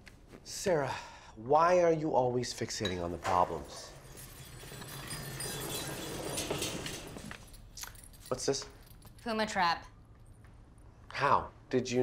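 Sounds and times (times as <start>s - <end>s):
wire crate rattling on wooden floor: 4.5s - 7.5s.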